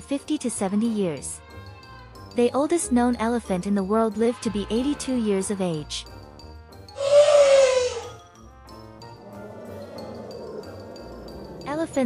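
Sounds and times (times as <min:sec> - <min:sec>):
soft background music: 0:00.0 - 0:12.0
elephant trumpeting: 0:07.0 - 0:08.2, 0:09.1 - 0:11.8.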